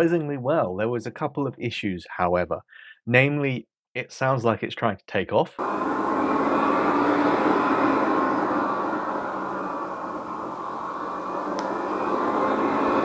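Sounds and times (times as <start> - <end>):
computer cooling fans whooshing: 5.6 - 13.0.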